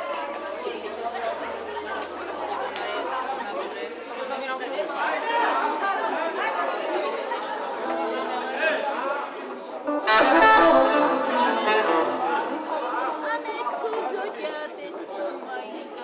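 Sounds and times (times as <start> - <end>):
crowd chatter in a large hall: 0.0 - 16.0.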